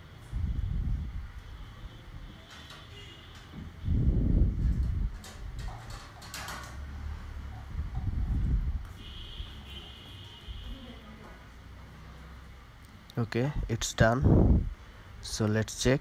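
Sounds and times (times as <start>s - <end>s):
low rumbling air gusts: 0.2s - 2.3s, 3.6s - 6.0s, 6.9s - 9.0s, 13.4s - 15.3s.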